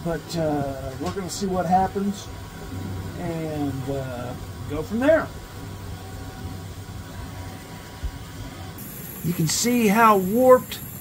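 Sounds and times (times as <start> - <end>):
film scanner humming: 5.4 - 11.0.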